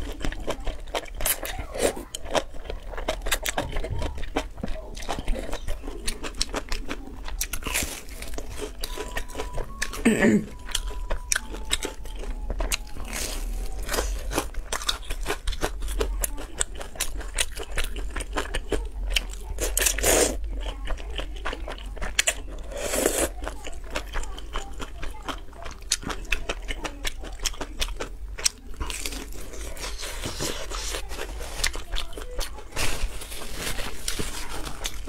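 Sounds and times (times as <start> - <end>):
crunching and chewing: 0.0 - 35.0
noodles slurped: 29.0 - 35.0.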